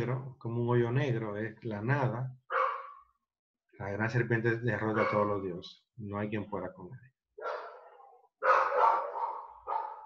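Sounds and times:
dog barking: 0:02.5 - 0:03.1, 0:04.9 - 0:05.4, 0:07.4 - 0:10.0.

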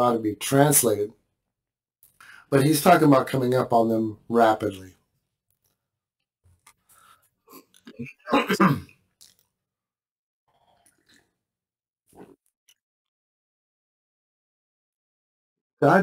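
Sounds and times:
man clearing his throat: 0:07.9 - 0:08.9
sipping and swallowing: 0:10.5 - 0:11.4.

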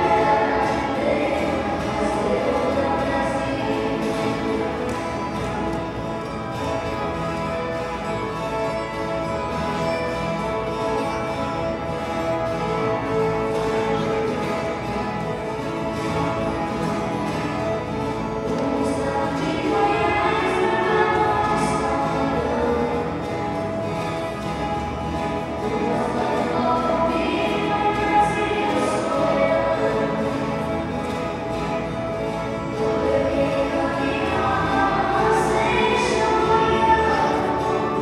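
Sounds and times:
group singing in unison: 0:00.0 - 0:05.3, 0:18.6 - 0:23.4, 0:25.6 - 0:30.8, 0:32.8 - 0:38.0
ten-string guitars playing: 0:00.0 - 0:38.0.

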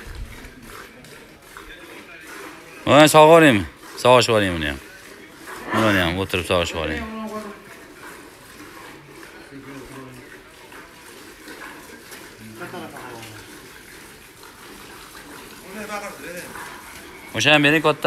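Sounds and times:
milk squirting into metal pail: 0:00.0 - 0:18.0.

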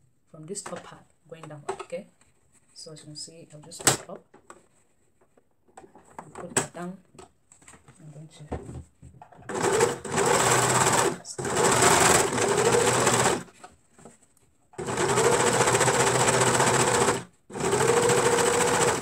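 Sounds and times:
overlock sewing machine running: 0:09.5 - 0:13.5, 0:14.8 - 0:19.0.

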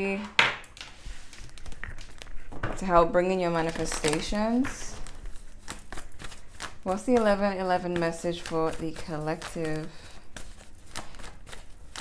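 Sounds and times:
cards being shuffled: 0:00.6 - 0:02.9, 0:03.6 - 0:12.0.

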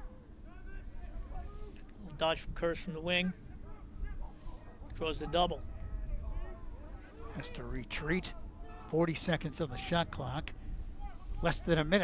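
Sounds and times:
low rumble of field ambience: 0:00.0 - 0:12.0.

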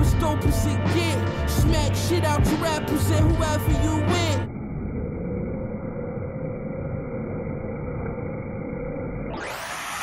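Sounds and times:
rap music: 0:00.0 - 0:04.5.

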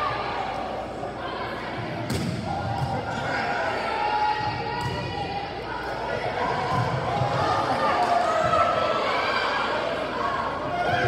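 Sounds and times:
players and spectators shouting: 0:00.0 - 0:11.0.

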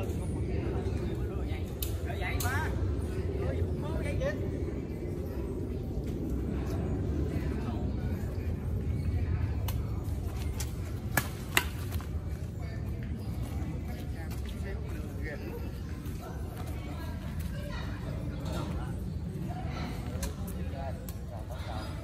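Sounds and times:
city traffic rumble: 0:00.0 - 0:22.0
people chatting: 0:00.0 - 0:22.0.

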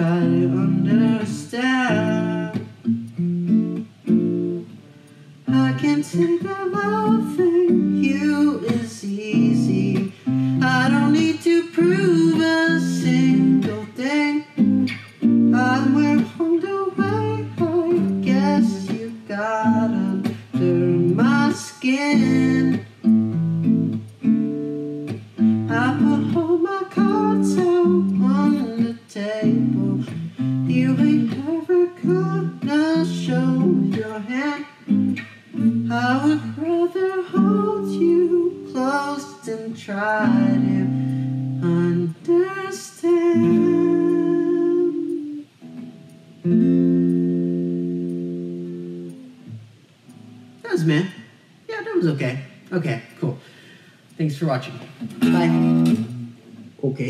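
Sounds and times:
man singing: 0:00.0 - 0:02.8, 0:05.4 - 0:23.2, 0:25.4 - 0:45.5, 0:50.6 - 0:53.4, 0:54.2 - 0:56.1
acoustic guitar: 0:00.0 - 0:57.0.

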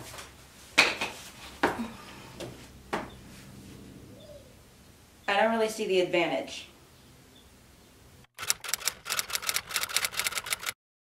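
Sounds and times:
rapid sharp clicks: 0:08.4 - 0:10.8.

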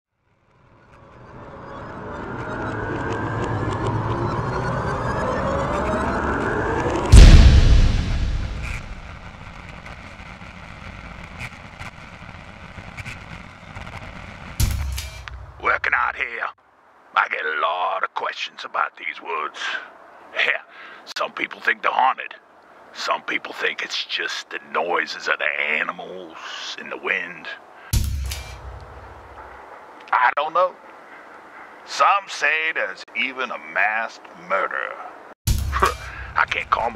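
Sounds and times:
low rumbling drone with crackles: 0:00.2 - 0:16.3, 0:35.5 - 0:36.9
deep cinematic boom: 0:03.5 - 0:10.0.

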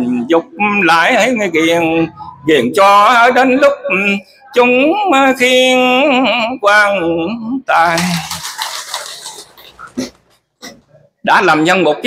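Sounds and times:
sniffing or throat sounds: 0:09.6 - 0:11.1.

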